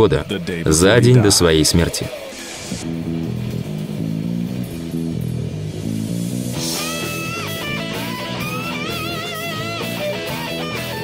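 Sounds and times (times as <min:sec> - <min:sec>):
low guitar riff: 0:02.8 - 0:11.0.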